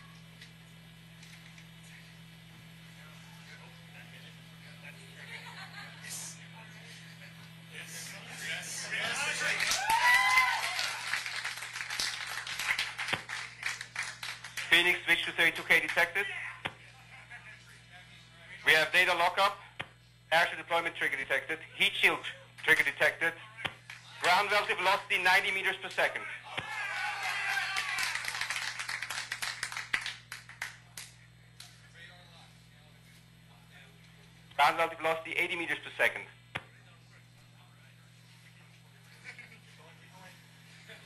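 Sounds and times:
steady low hum: 0.0s - 41.0s
people applauding: 9.0s - 14.9s, 15.6s - 16.1s, 26.6s - 31.2s
people clapping: 9.1s - 15.0s, 15.6s - 16.1s, 23.8s - 24.5s, 26.6s - 31.8s.

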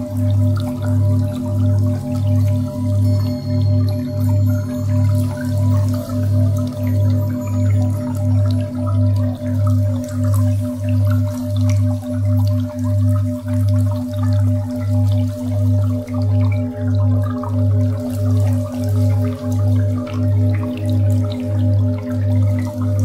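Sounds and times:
low pulsing drone: 0.0s - 23.0s
water drops: 0.0s - 23.0s.

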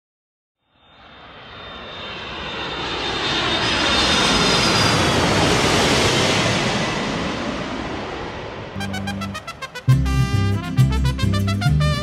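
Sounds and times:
airliner engines roaring with whine: 0.6s - 11.4s.

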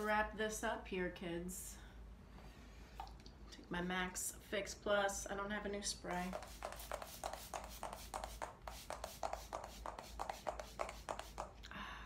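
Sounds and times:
spray bottle hissing: 6.2s - 11.6s.

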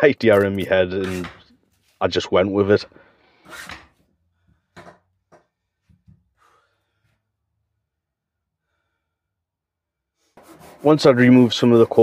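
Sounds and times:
soft breath: 6.3s - 7.3s.

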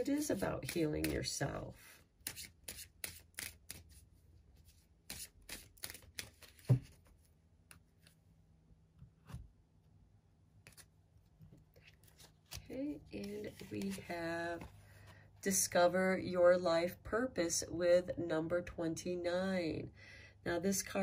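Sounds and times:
cards being shuffled: 5.1s - 8.2s, 10.6s - 11.0s, 11.6s - 14.8s.

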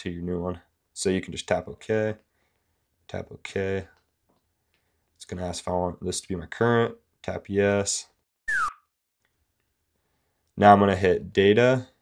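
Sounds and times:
falling whistle-like tone: 8.5s - 8.8s.

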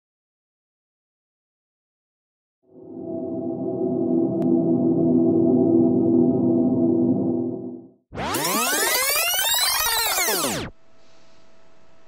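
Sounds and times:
steady hum: 2.7s - 7.9s
synthesized rising and falling tones: 2.7s - 10.6s.

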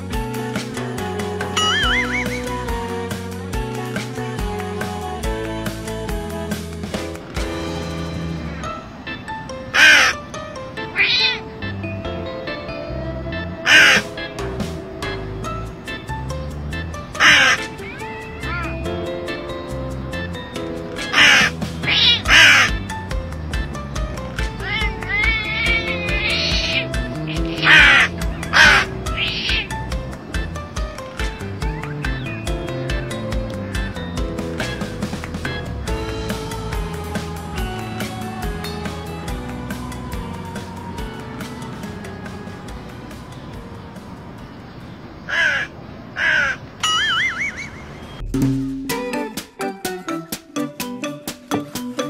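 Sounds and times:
background music with steady beat: 0.0s - 9.1s, 13.2s - 44.2s, 48.2s - 52.0s
crow cawing: 1.6s - 2.5s, 9.8s - 10.2s, 13.6s - 14.1s, 17.2s - 18.6s, 21.0s - 22.8s, 24.6s - 29.7s, 45.3s - 47.8s
warbling whistle-like tone: 1.6s - 2.5s.

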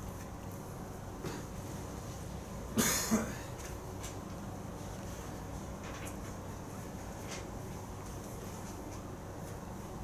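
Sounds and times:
low room hum: 0.0s - 10.0s
person coughing: 2.7s - 3.5s.

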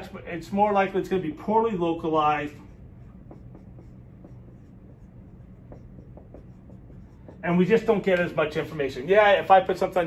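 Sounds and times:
marker writing on whiteboard: 2.0s - 8.7s.

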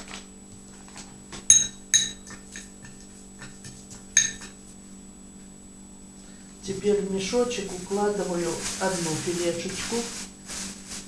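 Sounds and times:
spoon clinking glass bowl: 1.5s - 4.6s.

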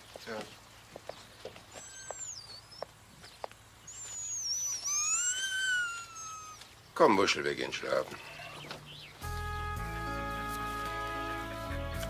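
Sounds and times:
dog whining: 1.7s - 2.6s, 4.1s - 6.6s.

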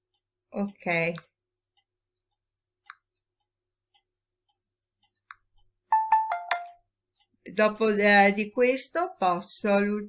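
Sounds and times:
notification chime: 5.9s - 6.8s.

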